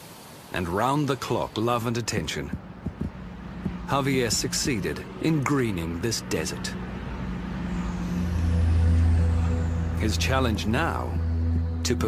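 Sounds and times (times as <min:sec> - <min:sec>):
background music: 0:02.3 - 0:12.0.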